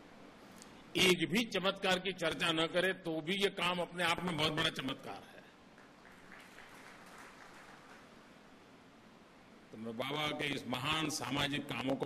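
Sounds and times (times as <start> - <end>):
faint applause: 5.7 - 8.2.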